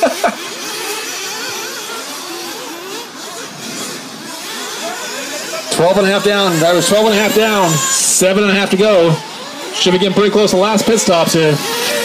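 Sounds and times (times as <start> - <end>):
small engines buzzing: 0.0 - 12.0.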